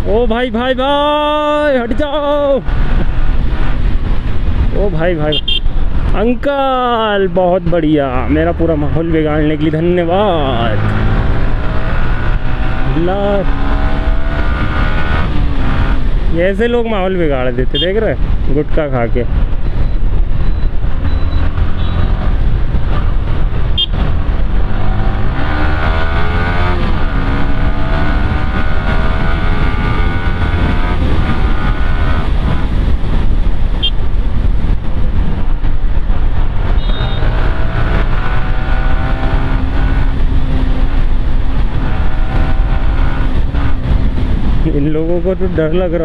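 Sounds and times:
motorcycle engine accelerating: 9.2 - 16.3, 20.1 - 44.7.

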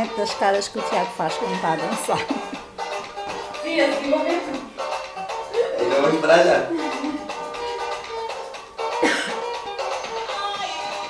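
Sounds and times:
dance music playing: 0.0 - 11.0
person coughing: 9.0 - 9.5.

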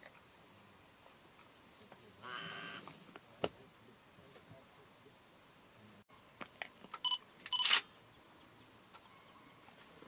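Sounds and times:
camera beeping: 7.0 - 7.9.

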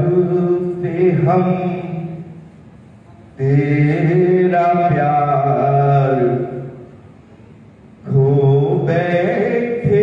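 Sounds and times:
man singing slow melody: 3.4 - 6.6, 8.0 - 10.0.

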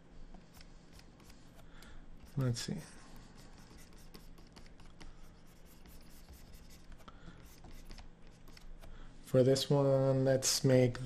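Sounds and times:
low steady hum: 0.0 - 11.0
stylus scratching and tapping on screen: 0.3 - 9.0.

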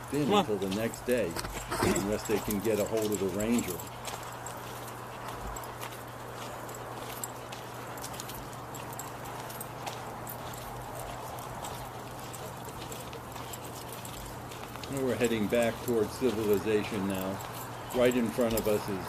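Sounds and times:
footsteps crunching on gravel: 0.2 - 19.0.

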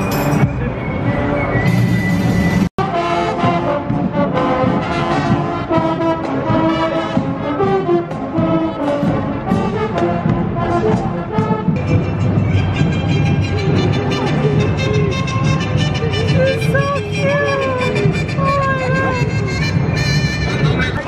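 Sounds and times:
marching band playing: 0.0 - 21.0.

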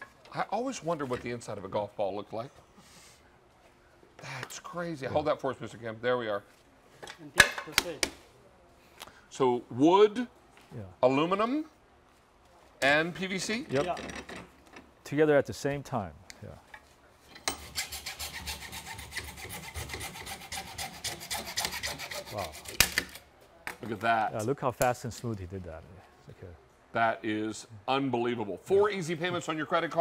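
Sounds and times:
hand saw rasping: 17.5 - 23.0.

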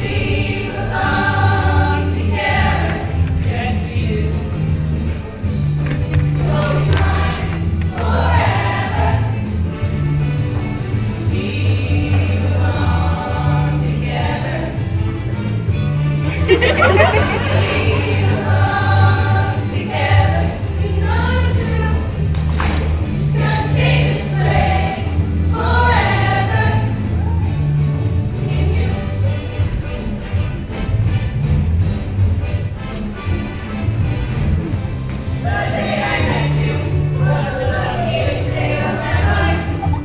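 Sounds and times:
choir singing in parts: 0.0 - 4.4, 6.3 - 9.6, 11.2 - 14.9, 16.5 - 22.1, 23.1 - 27.2, 35.3 - 40.0
bass line: 16.2 - 19.3.

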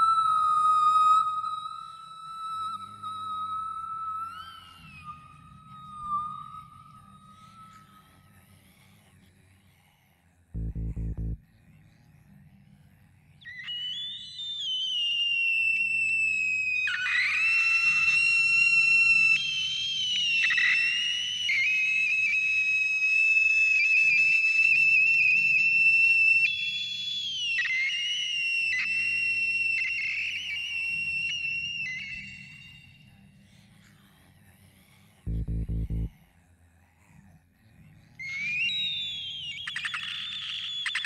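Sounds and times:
whistle-like gliding synth tone: 0.0 - 8.1, 13.7 - 32.9, 35.3 - 36.1, 38.4 - 41.0
soft low pulsing bass: 10.6 - 11.4, 35.3 - 36.1.

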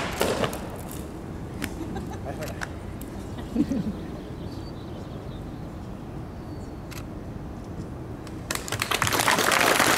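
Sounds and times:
audience clapping: 8.5 - 9.9.

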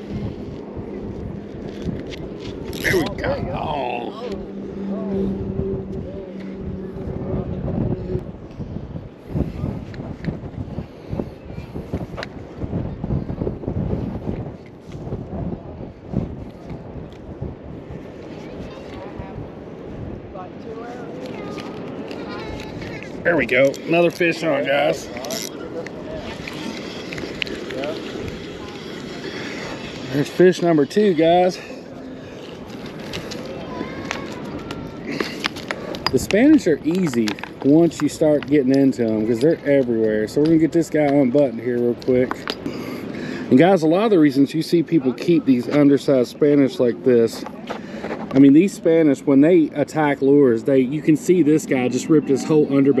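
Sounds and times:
faint voices: 0.0 - 11.9, 18.0 - 53.0
wind buffeting microphone: 0.0 - 53.0.

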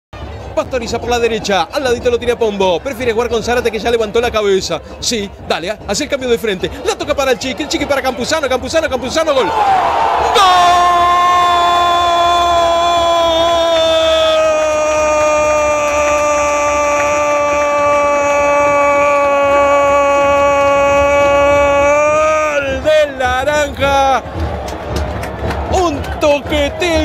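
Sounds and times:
commentator shouting goal cry: 9.0 - 24.2.

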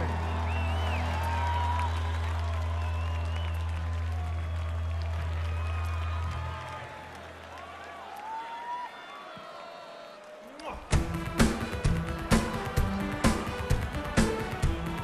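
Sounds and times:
crowd cheering and applauding: 0.0 - 15.0.

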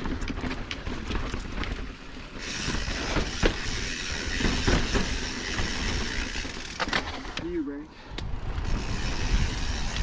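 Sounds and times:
bike tyres crunching over rock: 0.0 - 7.6
bike rattling: 0.0 - 10.0.

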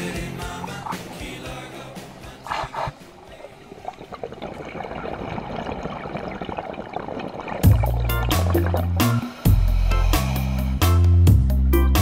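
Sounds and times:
muffled underwater noise: 0.2 - 9.1
song: 7.7 - 11.1.

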